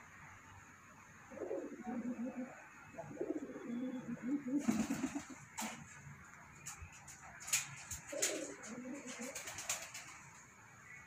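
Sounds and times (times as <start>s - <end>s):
pigeon cooing: 1.3s - 5.4s, 8.0s - 10.0s.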